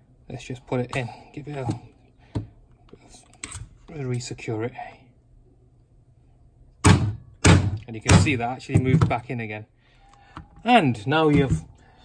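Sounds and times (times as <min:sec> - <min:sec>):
hammer striking metal punch: 0:06.8 - 0:09.2.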